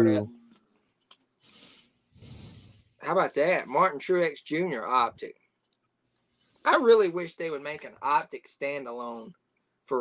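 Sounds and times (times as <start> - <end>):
breathing near microphone: 1.4 - 3.0.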